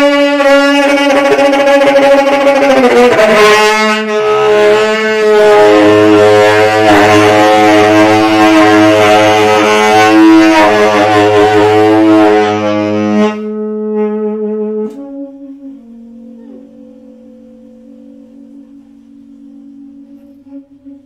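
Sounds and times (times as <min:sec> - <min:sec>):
low sustained accompaniment: 0:00.0 - 0:21.0
saxophone playing long notes: 0:00.0 - 0:21.0.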